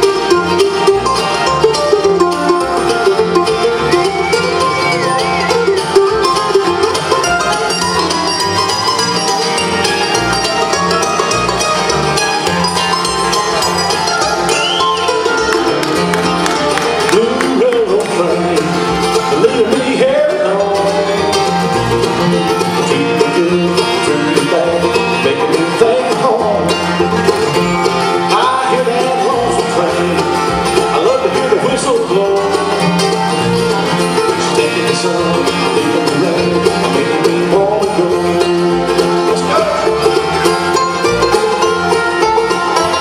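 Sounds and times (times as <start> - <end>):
acoustic guitar: 0.0 - 43.0
banjo: 0.0 - 43.0
upright bass: 0.0 - 43.0.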